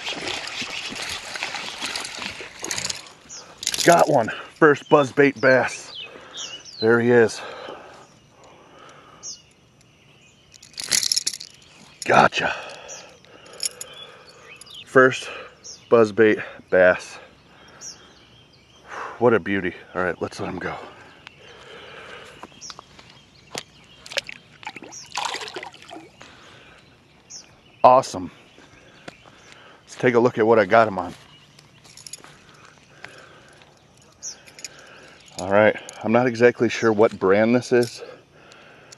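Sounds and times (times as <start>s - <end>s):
fish splashing into water: 0.0s - 2.9s, 24.1s - 26.2s
bird chirp: 0.0s - 38.9s
handling clicks and knocks: 1.8s - 4.3s, 10.5s - 13.9s
crackling rattling clicks of fishing lure: 10.5s - 12.1s.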